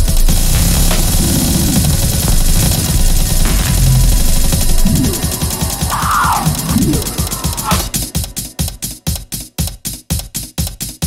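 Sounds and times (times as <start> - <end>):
distorted bass-heavy electronic music: 0.0 - 9.2
low tone gliding downward: 2.3 - 8.2.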